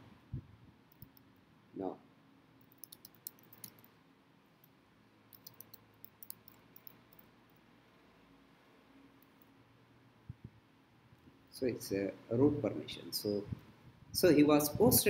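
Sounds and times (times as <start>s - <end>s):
computer keyboard typing: 2.7s - 3.9s, 5.3s - 7.0s.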